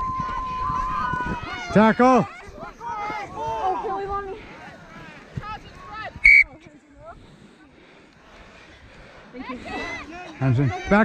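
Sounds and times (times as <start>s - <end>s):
faint voices: 0.0s - 11.0s
referee's whistle blast: 6.2s - 6.5s.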